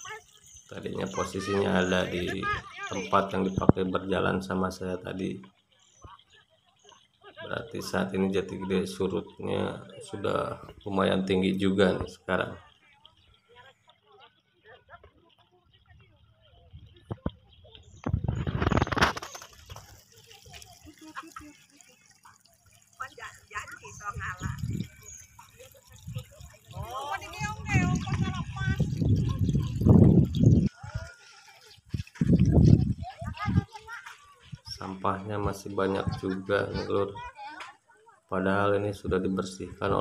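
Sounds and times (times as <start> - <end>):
people talking and calling: 0.0 - 40.0.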